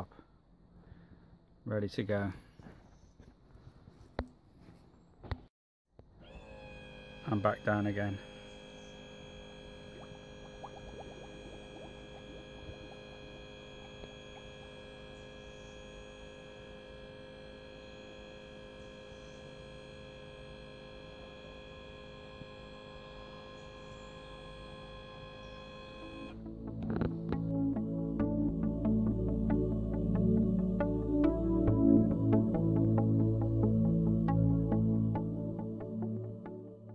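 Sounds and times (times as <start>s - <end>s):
hydraulic pump motor whining: 6.0s - 36.1s.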